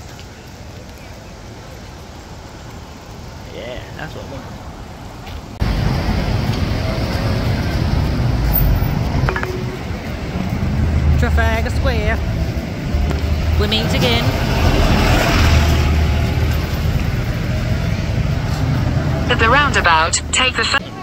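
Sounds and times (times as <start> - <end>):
road traffic rumble: 0.0 - 21.0
car passing close: 4.1 - 20.8
passers-by voices: 5.6 - 21.0.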